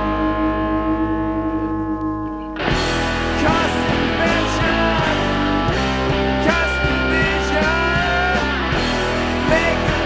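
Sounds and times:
droning guitar chord: 0.0s - 10.0s.

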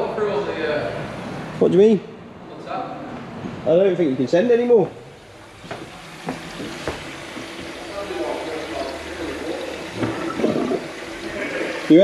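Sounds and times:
tap water running into sink: 5.5s - 12.0s.

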